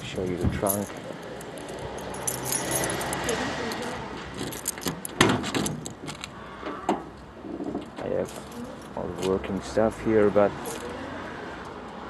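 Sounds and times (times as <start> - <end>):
car keys jangling: 0.4 - 6.3, 8.2 - 9.4, 10.6 - 11.0.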